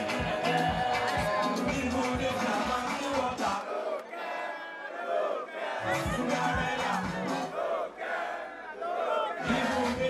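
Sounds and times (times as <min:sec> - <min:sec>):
bass beat over pa: 0:00.0 - 0:03.6, 0:05.8 - 0:07.6, 0:09.4 - 0:10.0
crowd shouting and singing along: 0:00.0 - 0:10.0.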